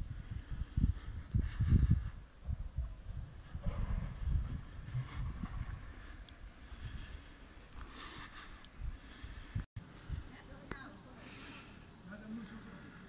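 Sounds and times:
wind buffeting microphone: 0.0s - 10.5s
faint outdoor ambience: 0.0s - 13.0s.

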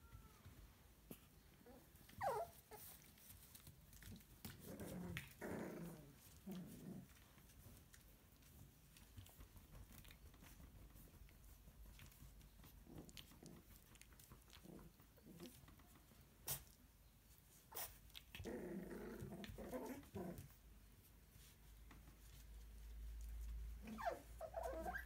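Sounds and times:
puppies growling: 1.6s - 7.8s, 12.7s - 15.9s, 17.8s - 20.6s.

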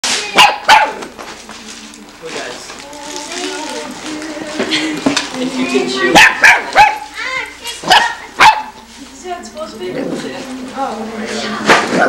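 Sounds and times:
puppy barking: 0.4s - 1.1s, 6.1s - 7.1s, 7.8s - 8.8s.

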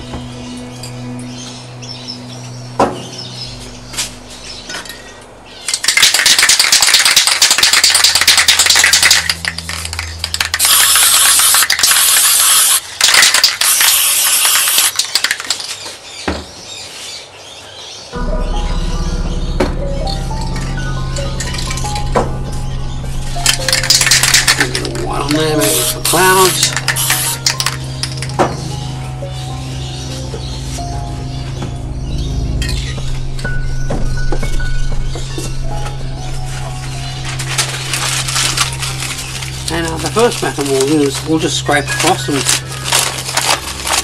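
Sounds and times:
background music: 0.0s - 13.8s, 18.2s - 44.0s
spray paint can hissing: 5.7s - 15.7s, 23.4s - 28.3s.

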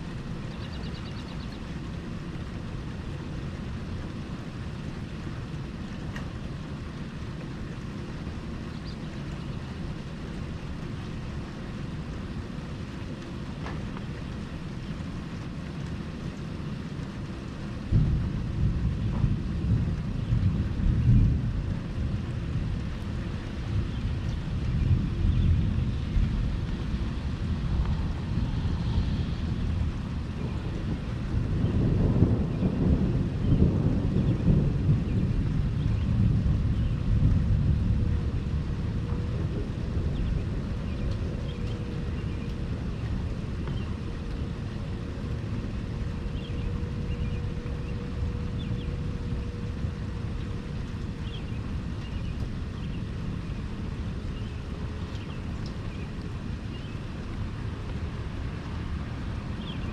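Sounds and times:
steady rain: 0.0s - 59.9s
thunder rumbling: 1.6s - 59.9s.

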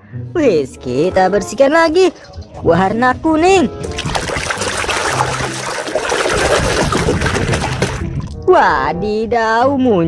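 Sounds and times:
foamy liquid sloshing and bubbling: 3.8s - 8.4s.

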